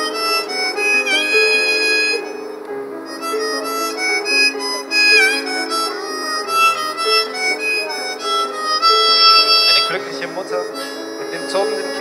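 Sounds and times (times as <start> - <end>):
harmonica solo: 0.0 - 12.0
piano chords: 0.0 - 12.0.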